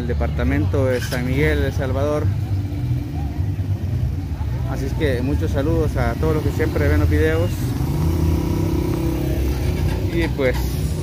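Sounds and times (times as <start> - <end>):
small motorcycle engine rumbling: 0.4 - 11.0.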